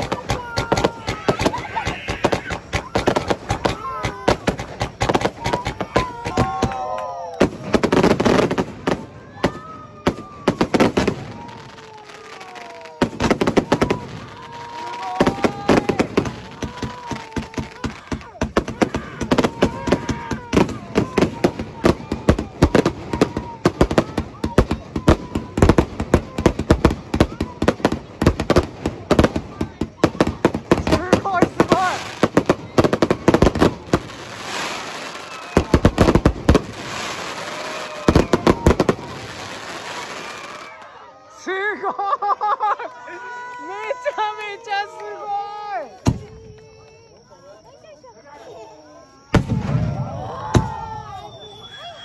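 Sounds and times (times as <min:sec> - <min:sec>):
toddlers crying: 0:00.0 - 0:07.3, 0:09.4 - 0:26.6
fireworks bangs and crackles: 0:00.0 - 0:41.0, 0:43.8 - 0:47.2, 0:49.1 - 0:52.0.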